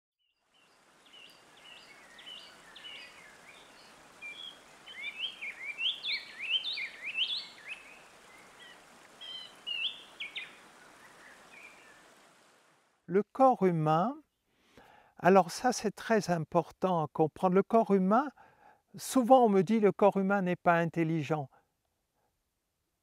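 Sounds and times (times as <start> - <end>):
steady outdoor hiss: 0.4 - 23.0
birds chirping and whistling: 1.2 - 12.0.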